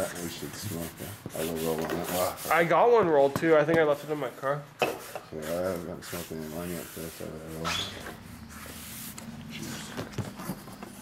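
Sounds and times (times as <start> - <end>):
marker scratching on paper: 0.0 - 2.7, 5.4 - 11.0.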